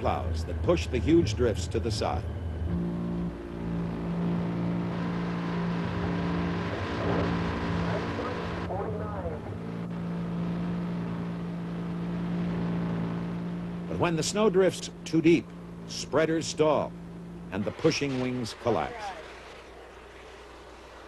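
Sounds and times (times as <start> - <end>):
diesel locomotive engine humming: 0.0 - 21.0.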